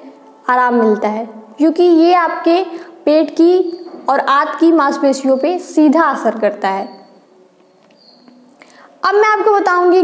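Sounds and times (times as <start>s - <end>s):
soft intake of breath: 8.6s - 9.0s.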